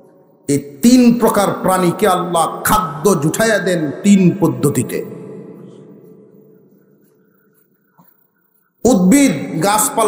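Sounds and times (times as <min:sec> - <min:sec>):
man speaking over loudspeakers: 0:00.5 - 0:05.6, 0:08.8 - 0:10.0.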